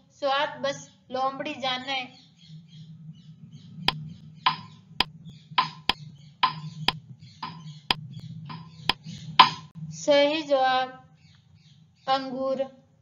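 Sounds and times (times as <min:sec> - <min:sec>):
low steady hum: 0:00.0 - 0:13.0
clock ticking: 0:03.9 - 0:09.7.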